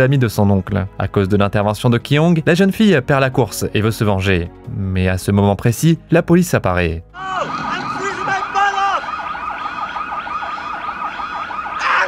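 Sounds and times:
man shouting: 0:07.2 - 0:09.0, 0:11.8 - 0:12.0
police siren yelping: 0:07.2 - 0:12.0.

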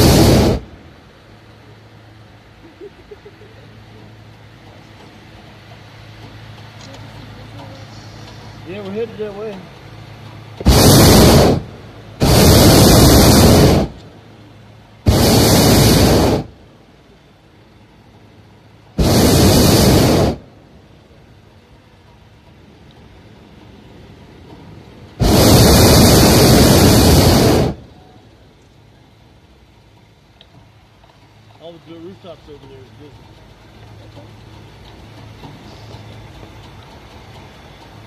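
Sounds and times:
propane burner roaring: 0:00.0 - 0:38.0.

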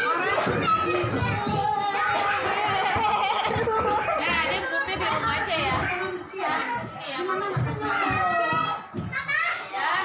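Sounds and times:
young children talking and calling: 0:00.0 - 0:10.0.

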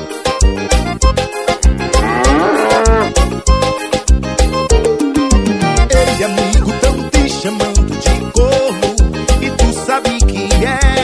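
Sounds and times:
bass and drum beat: 0:00.0 - 0:11.0
cow mooing: 0:01.8 - 0:03.3.

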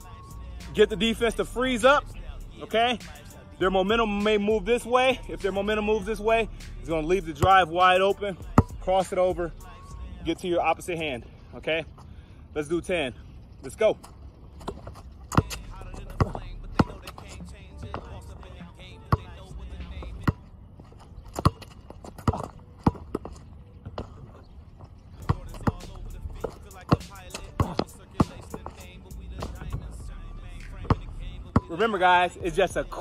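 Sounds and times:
background music: 0:00.0 - 0:10.9, 0:15.4 - 0:21.6, 0:25.1 - 0:33.0
basketball bouncing on asphalt: 0:02.5 - 0:06.0, 0:06.9 - 0:09.8, 0:14.0 - 0:33.0.

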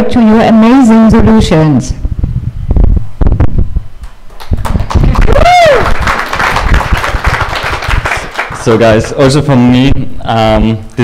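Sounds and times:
microphone bumping and rubbing: 0:02.0 - 0:05.3
audience applause: 0:04.3 - 0:09.2
person whooping: 0:05.2 - 0:06.1.

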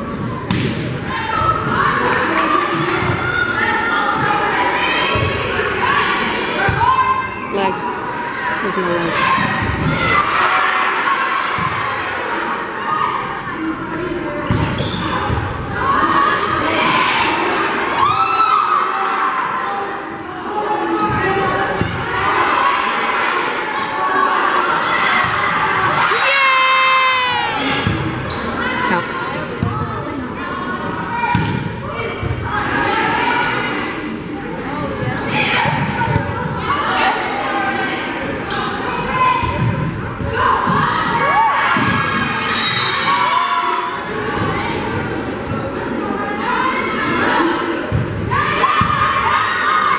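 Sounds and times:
crowd voices: 0:00.0 - 0:49.9
shoes squeaking on gym floor: 0:14.3 - 0:15.2
volleyball hits: 0:31.3 - 0:32.4.

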